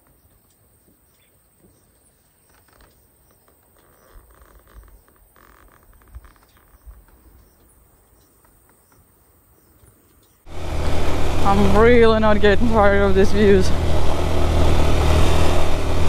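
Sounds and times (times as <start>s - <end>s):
low rumbles: 10.5s - 16.0s.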